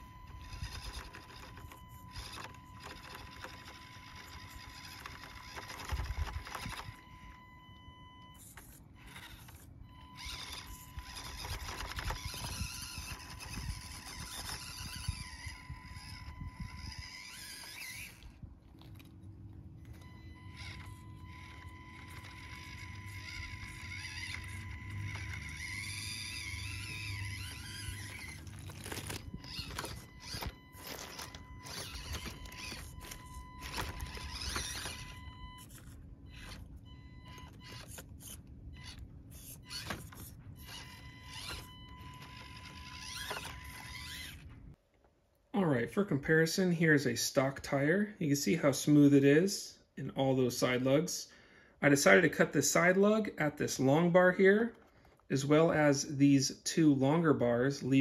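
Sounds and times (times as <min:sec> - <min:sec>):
electric motor whining: 0:00.0 - 0:44.8
tyres scraping on stone: 0:25.3 - 0:36.7.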